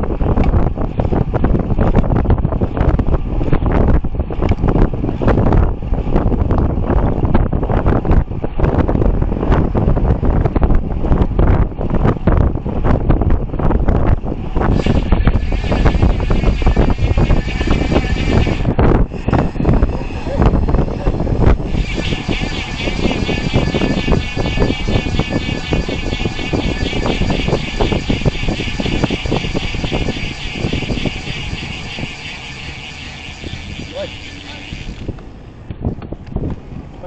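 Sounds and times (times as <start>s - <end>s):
wind buffeting microphone: 0.0s - 37.0s
freewheel ratchet buzz: 14.6s - 35.3s.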